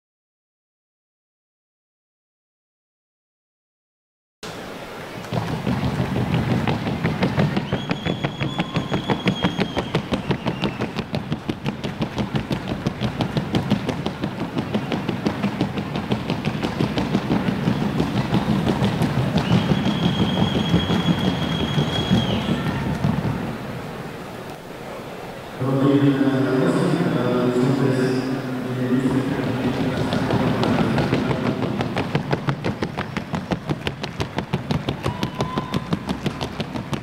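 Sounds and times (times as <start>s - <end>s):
low arena rumble: 4.4s - 37.0s
horse hoofbeats clattering: 5.2s - 23.8s, 29.0s - 37.0s.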